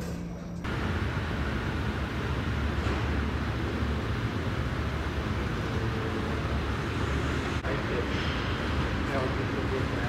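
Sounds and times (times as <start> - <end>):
distant traffic rumble: 0.7 - 10.0.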